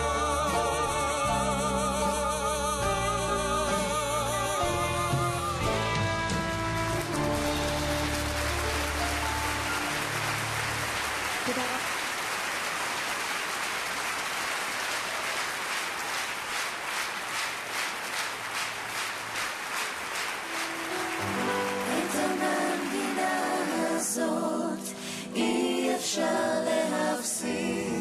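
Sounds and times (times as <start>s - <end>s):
music playing: 0.0s - 11.8s, 20.1s - 28.0s
audience applauding: 5.8s - 24.4s
rhythmic clapping in unison: 5.8s - 24.5s.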